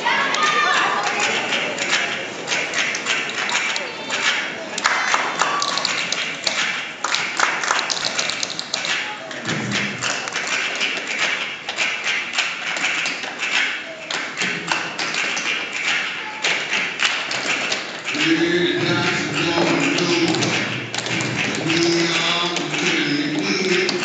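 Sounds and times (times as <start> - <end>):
tap shoes striking stage floor: 0.3 - 24.0.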